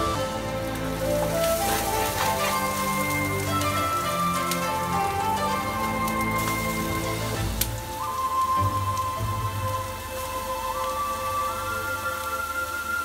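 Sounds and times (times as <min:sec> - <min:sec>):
background music: 0:00.0 - 0:13.0
garlic and onion sizzling in oil: 0:00.0 - 0:13.0.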